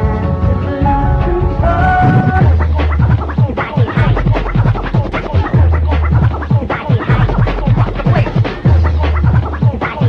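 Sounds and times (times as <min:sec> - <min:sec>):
deep bass notes: 0:00.0 - 0:09.7
fast breakbeat: 0:01.0 - 0:10.0.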